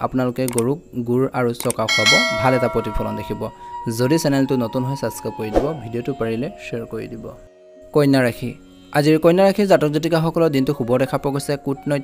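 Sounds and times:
bell-like ding: 1.9s - 3.9s.

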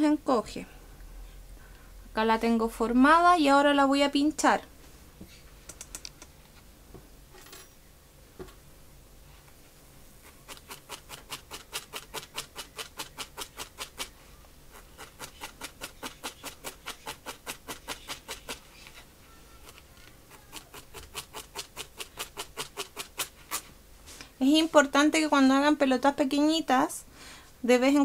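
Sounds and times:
felting needle stabbing wool: 10.2s - 18.6s, 19.6s - 23.6s.

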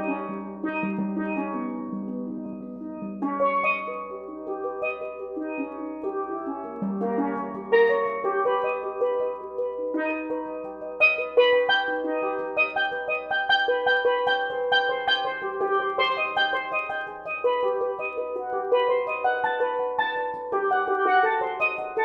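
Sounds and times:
steel pans played with mallets: 0.0s - 22.0s.

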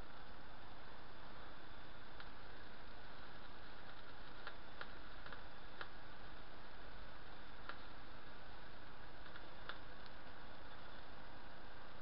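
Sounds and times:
steady hiss: 0.0s - 12.0s
tesla coil arc snaps: 1.9s - 11.0s.

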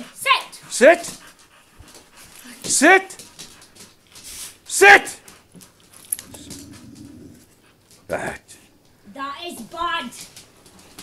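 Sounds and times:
dog growling: 6.2s - 7.8s.

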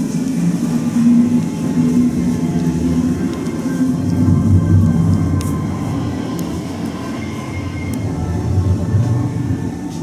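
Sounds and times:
low rumble: 0.4s - 10.0s.

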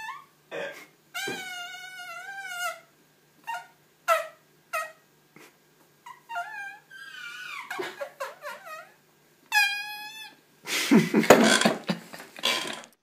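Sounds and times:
marker squeaking on whiteboard: 1.2s - 5.0s, 6.1s - 10.4s.

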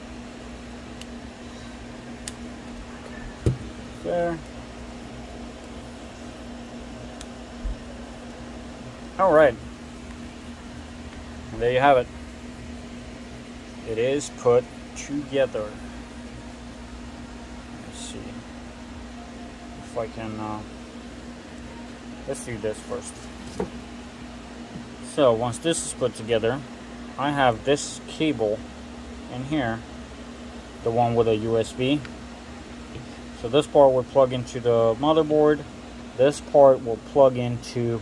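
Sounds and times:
machine hum with fan noise: 0.0s - 38.0s.

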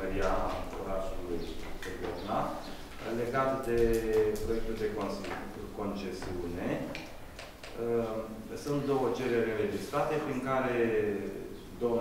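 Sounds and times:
man reading aloud: 0.0s - 7.0s, 7.8s - 12.0s.

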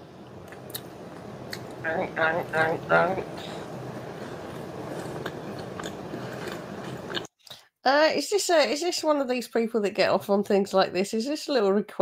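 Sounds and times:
person chewing food: 0.4s - 1.8s, 2.5s - 7.6s.

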